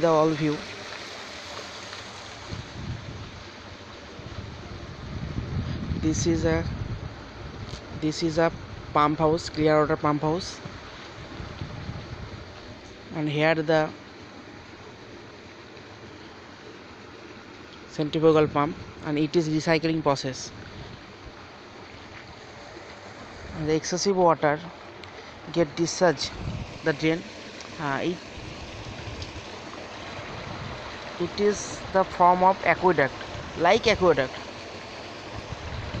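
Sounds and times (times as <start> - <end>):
water rushing into drain: 24.7 - 36.0.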